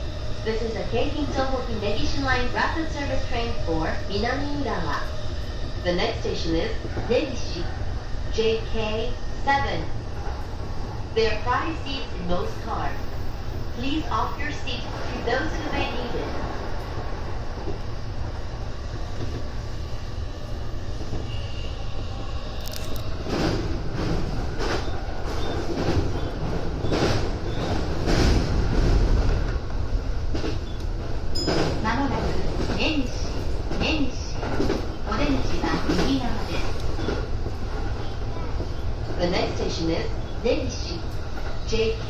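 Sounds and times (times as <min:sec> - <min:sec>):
train rumble from inside: 0:00.0 - 0:42.0.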